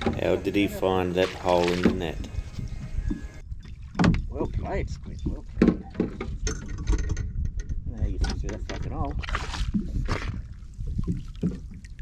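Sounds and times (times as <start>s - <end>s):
water sloshing and splashing: 0.0s - 7.3s, 8.4s - 12.0s.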